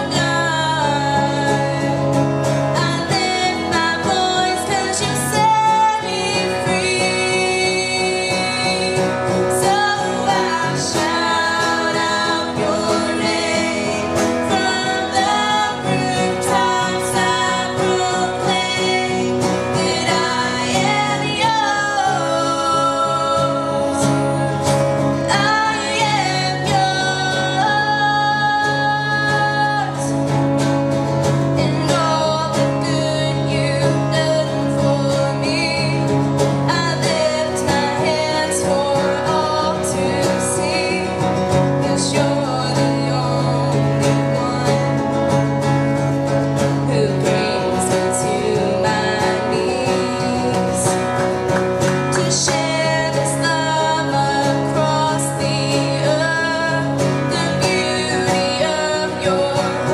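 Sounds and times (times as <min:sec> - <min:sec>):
girl singing: 0:00.0 - 0:30.3, 0:31.5 - 0:45.1, 0:46.8 - 0:51.3, 0:52.1 - 0:59.9
acoustic guitar strumming: 0:00.0 - 0:59.9.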